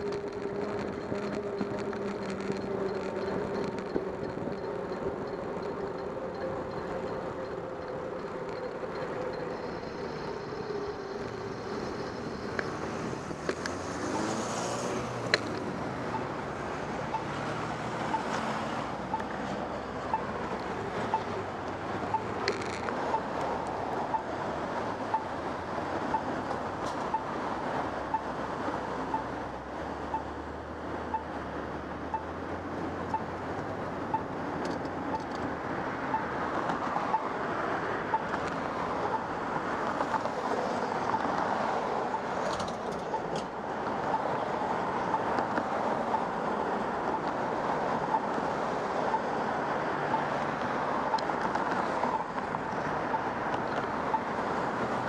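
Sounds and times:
crosswalk signal beeps: 0.0s - 14.4s, 15.3s - 27.4s, 28.0s - 32.4s, 33.0s - 55.0s
cars driving past: 0.0s - 55.0s
steady city hum: 0.0s - 55.0s.

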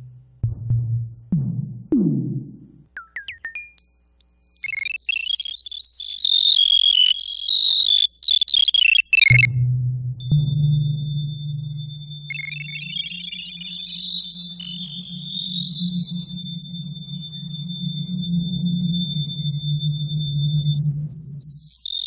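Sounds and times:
rapid high bleeps: 3.0s - 9.6s, 10.5s - 22.0s
thin steady high tone: 3.8s - 9.5s, 10.8s - 22.0s
low steady drone: 13.6s - 21.6s
falling high pings: 20.5s - 22.0s.

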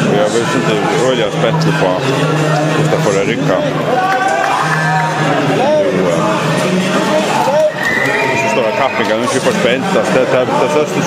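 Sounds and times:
people talking in echoing hall: 0.0s - 11.0s.

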